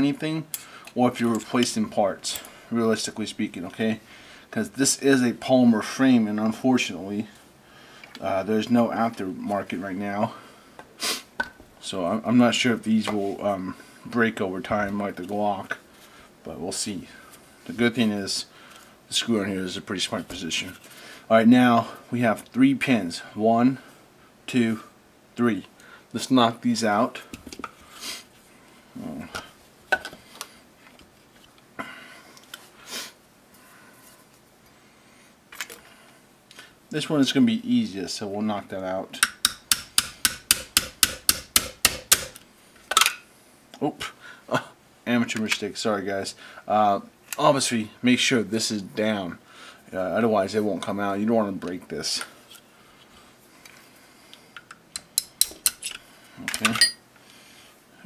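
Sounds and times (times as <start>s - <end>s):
hammer tapping pin punch: 39.2s - 42.4s.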